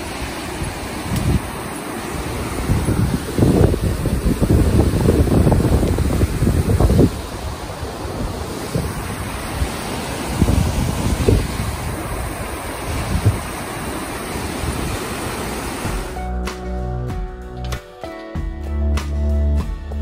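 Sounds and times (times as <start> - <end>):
river water rushing over rocks: 0.0 - 16.2
wind buffeting microphone: 0.0 - 16.2.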